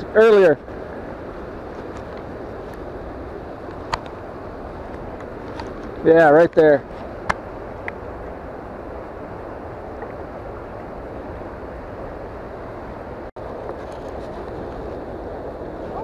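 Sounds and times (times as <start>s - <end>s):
flowing water rushing: 0.0s - 16.0s.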